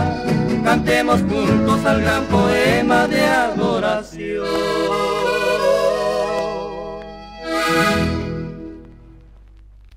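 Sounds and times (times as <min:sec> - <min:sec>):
accordion phrase: 0:00.0 - 0:08.9.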